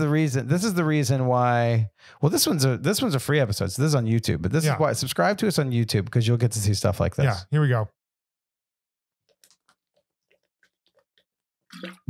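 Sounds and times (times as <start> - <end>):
people gulping water: 11.7 - 12.0.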